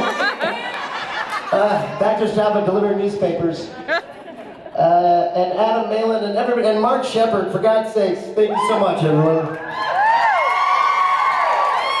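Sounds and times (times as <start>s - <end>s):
audience cheering: 8.5s - 12.0s
high whoops: 9.6s - 12.0s.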